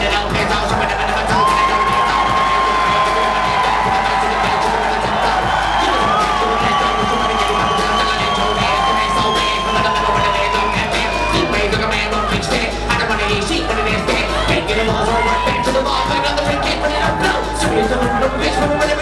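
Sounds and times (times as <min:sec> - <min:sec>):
crowd cheering and shouting: 0:00.0 - 0:19.0
hip-hop beat: 0:00.0 - 0:19.0.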